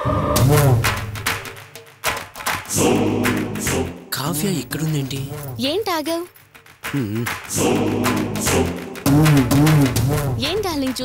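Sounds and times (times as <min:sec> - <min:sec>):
sharp percussion hits: 0:00.4 - 0:11.0
choir-like sung chord: 0:02.7 - 0:04.1, 0:07.5 - 0:09.3.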